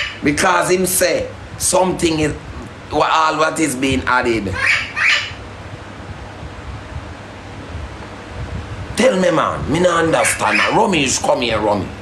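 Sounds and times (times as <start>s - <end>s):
low background rumble: 0.0s - 12.0s
man speaking: 9.0s - 12.0s.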